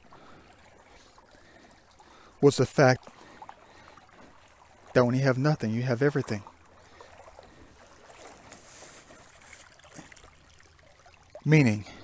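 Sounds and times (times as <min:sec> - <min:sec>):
creek water sloshing over gravel: 0:00.0 - 0:12.0.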